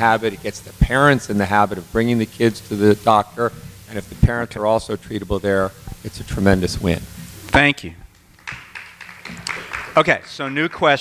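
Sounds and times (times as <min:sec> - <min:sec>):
audience applauding: 0:08.3 - 0:11.0.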